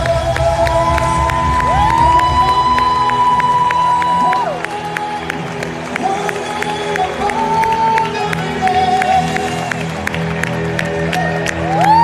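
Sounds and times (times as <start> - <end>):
crowd cheering and whooping: 0.0 - 12.0
live worship band music: 0.0 - 12.0.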